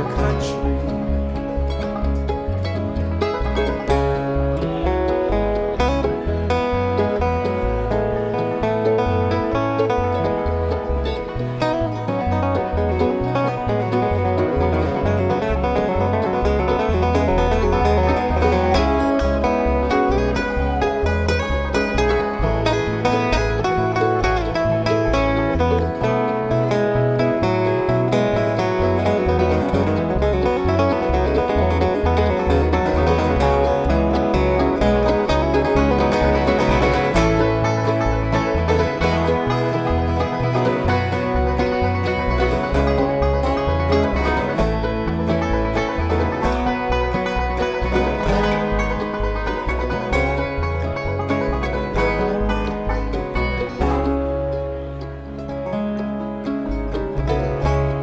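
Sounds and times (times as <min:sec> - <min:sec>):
acoustic guitar picking: 0:00.0 - 0:58.0
banjo: 0:00.0 - 0:58.0
upright bass notes: 0:00.0 - 0:58.0.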